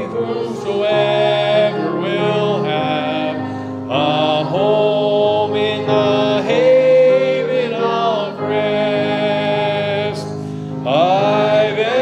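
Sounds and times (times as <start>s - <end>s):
low steady accompaniment: 0.0s - 12.0s
man singing a hymn: 0.0s - 12.0s.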